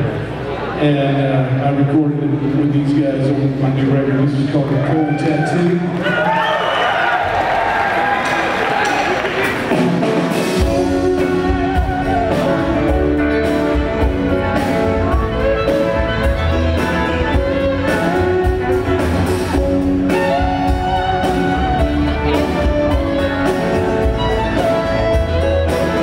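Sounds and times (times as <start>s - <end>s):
crowd cheering: 4.6s - 10.6s
live band with banjo and guitar: 9.4s - 26.0s
heavy bass line: 10.3s - 26.0s.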